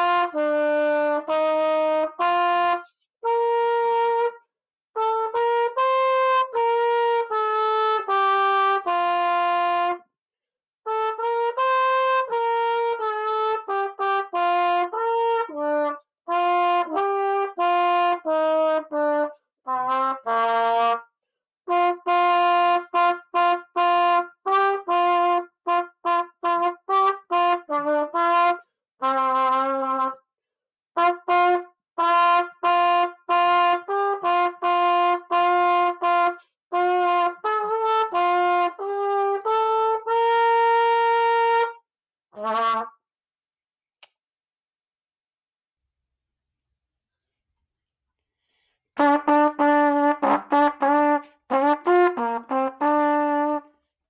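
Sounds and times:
solo trumpet: 0:00.0 - 0:10.1, 0:10.8 - 0:21.1, 0:21.7 - 0:30.2, 0:31.0 - 0:43.0, 0:48.9 - 0:53.8.

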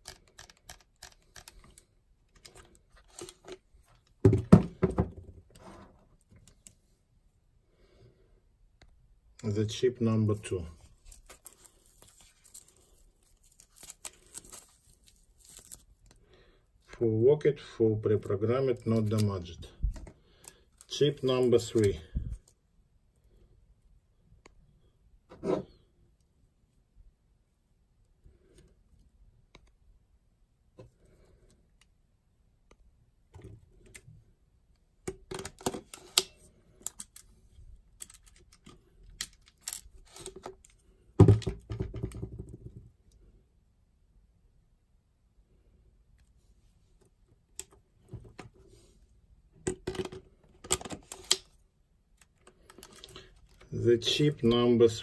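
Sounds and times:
camera being handled: 0:00.0 - 0:03.7, 0:49.7 - 0:51.5
hands handling foam packing: 0:10.9 - 0:16.2.

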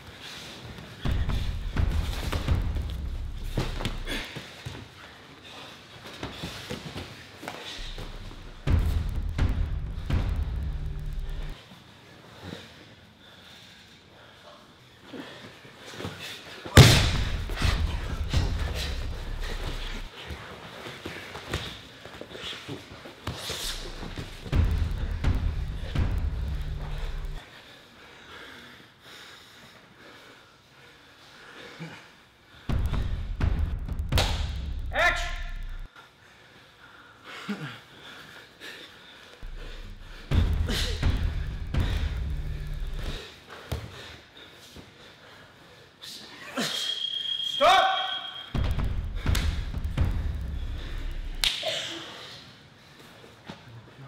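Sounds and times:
thuds and scuffling on mats: 0:00.3 - 0:05.0
loud thump: 0:01.1 - 0:04.1, 0:07.8 - 0:11.6, 0:16.8 - 0:20.1, 0:23.8 - 0:27.4, 0:39.4 - 0:43.2, 0:48.6 - 0:51.4.

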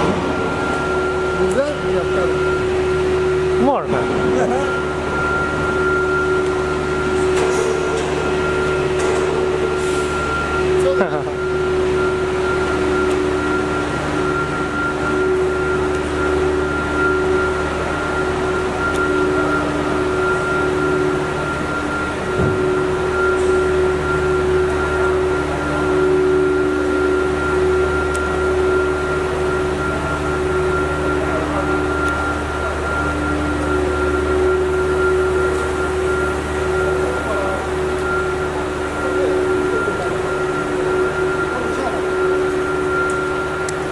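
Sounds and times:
machinery hum: 0:00.0 - 0:43.9.

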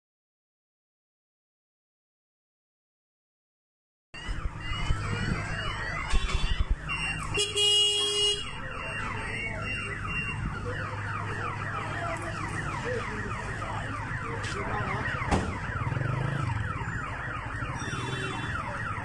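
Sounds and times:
car alarm: 0:04.2 - 0:19.0.

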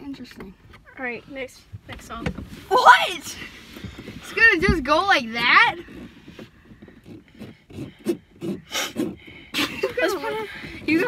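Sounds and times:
breathy puffs: 0:05.8 - 0:11.0.

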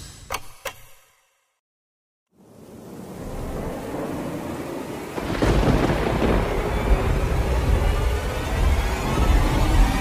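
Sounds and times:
rain-like hiss: 0:02.4 - 0:10.0
thunder rumbling: 0:02.4 - 0:10.0.

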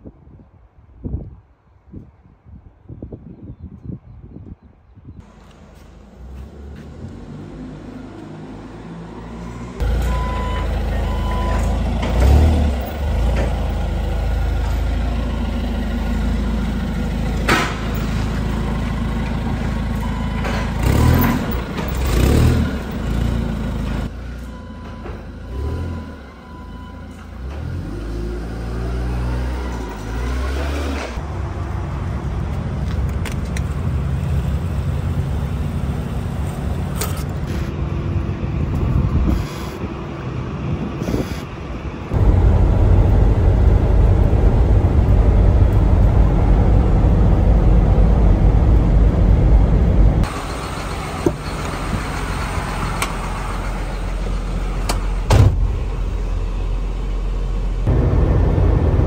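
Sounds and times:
forklift engine revving: 0:06.6 - 0:24.1, 0:42.1 - 0:59.0
reversing beeper: 0:09.8 - 0:11.8, 0:24.4 - 0:27.5.

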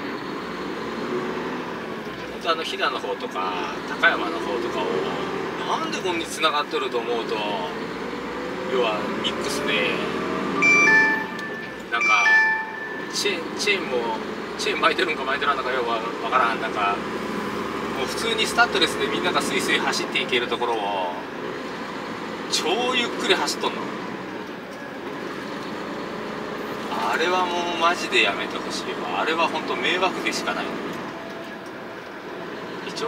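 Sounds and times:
road noise inside cab: 0:00.0 - 0:33.0
truck engine drone: 0:00.0 - 0:33.0
descending electronic chime: 0:10.6 - 0:13.4.

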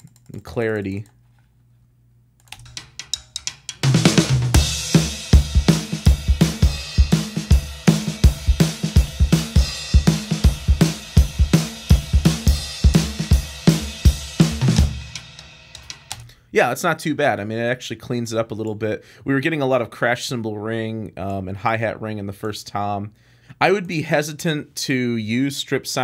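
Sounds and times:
snare drum: 0:02.8 - 0:16.1.

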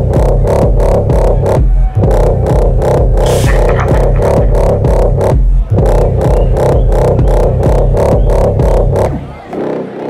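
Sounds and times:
electronic dance music: 0:00.0 - 0:09.8.

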